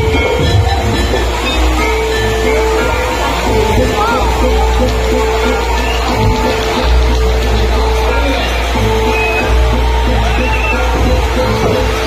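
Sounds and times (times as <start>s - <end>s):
amplified dance music: 0.0s - 12.0s
steady deep bass: 0.0s - 12.0s.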